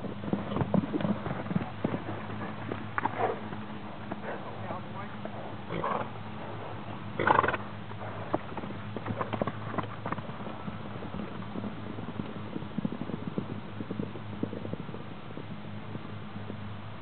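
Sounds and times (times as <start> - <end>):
hoofbeats on packed ground: 0.0 - 17.0
horse snorting: 0.5 - 9.7.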